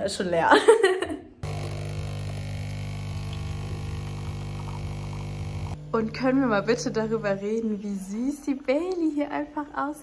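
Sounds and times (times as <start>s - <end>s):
coffee pouring into mug: 1.4s - 5.8s
coffee machine pump humming: 1.4s - 10.0s.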